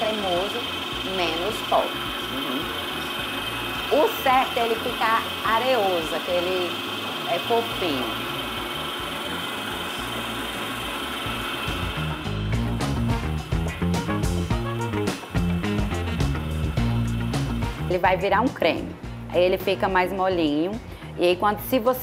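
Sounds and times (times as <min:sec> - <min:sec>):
electric stand mixer running: 0:00.0 - 0:19.2
music with steady bass beat: 0:08.2 - 0:22.0.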